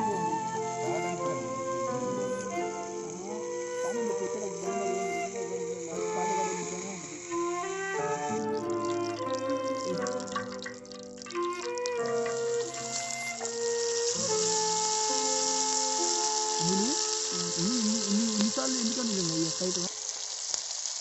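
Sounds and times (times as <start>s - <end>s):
background music of held notes: 0.0s - 19.8s
hot oil sizzling: 0.0s - 21.0s.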